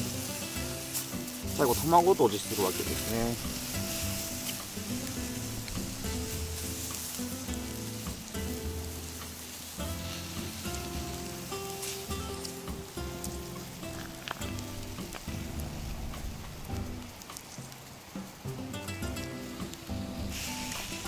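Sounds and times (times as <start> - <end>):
background music: 0.0 - 21.0
food sizzling in a frying pan: 0.0 - 21.0.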